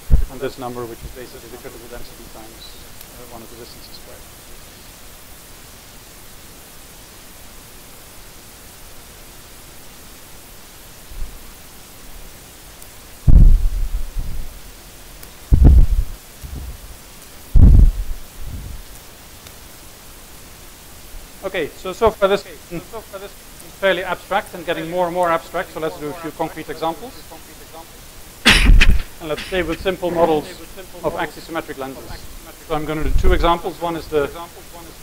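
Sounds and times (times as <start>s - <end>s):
microphone handling thumps: 0.0s - 0.3s, 13.3s - 14.5s, 15.5s - 16.8s, 17.6s - 18.8s, 28.5s - 29.9s
recording hiss: 0.0s - 35.0s.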